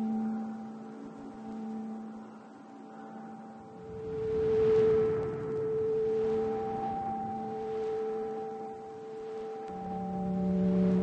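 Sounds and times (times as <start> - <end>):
sustained drone music: 0.0 - 11.0
low rumble: 3.6 - 11.0.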